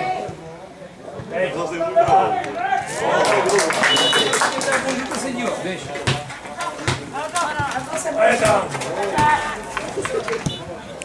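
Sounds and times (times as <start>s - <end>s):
players shouting: 0.0s - 11.0s
ball being kicked: 5.9s - 7.8s, 8.4s - 9.4s.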